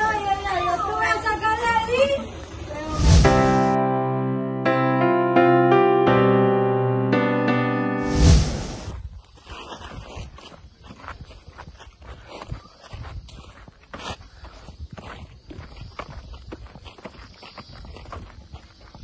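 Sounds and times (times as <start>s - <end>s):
wind rumble: 2.8s - 3.7s, 8.0s - 9.2s
footsteps on paved path: 8.9s - 19.0s.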